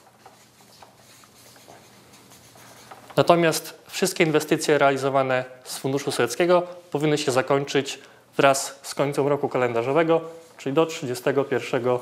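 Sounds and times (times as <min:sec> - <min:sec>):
marker pen writing on paper: 0:00.0 - 0:03.3.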